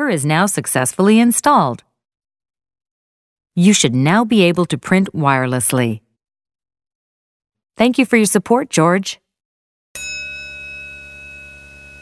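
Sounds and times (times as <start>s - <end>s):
elevator chime: 10.0s - 12.0s.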